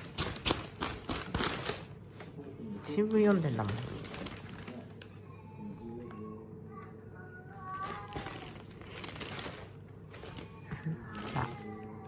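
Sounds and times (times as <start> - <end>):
newspaper rustling: 3.3 - 5.1, 7.8 - 11.7.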